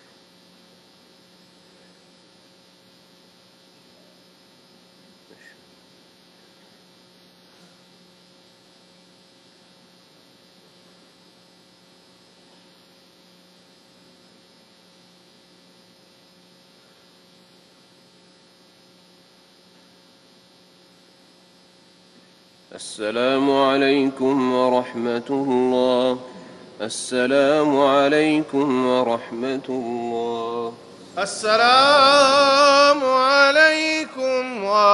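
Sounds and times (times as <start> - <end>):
electrical hum and hiss: 0.0 - 34.9
man chanting: 22.7 - 34.9.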